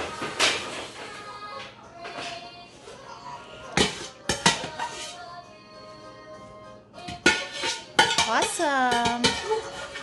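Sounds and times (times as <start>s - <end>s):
metal ladle scraping a pot: 3.8s - 5.3s, 7.1s - 10.0s.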